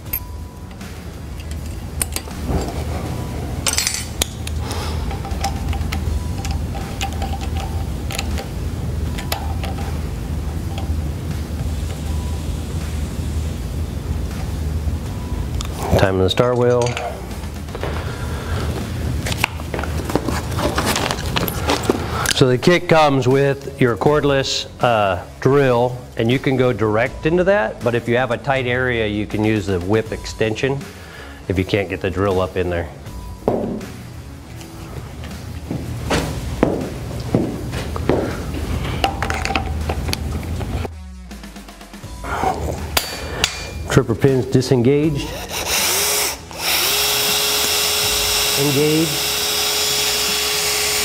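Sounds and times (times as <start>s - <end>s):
low steady hum: 0.0s - 48.6s
background music: 0.0s - 51.0s
metal tools knocking: 3.6s - 8.5s
footsteps: 17.4s - 22.1s, 34.6s - 39.4s.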